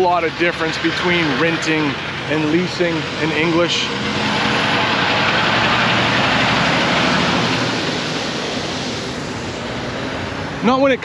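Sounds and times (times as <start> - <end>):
truck passing on road: 0.0 - 11.0.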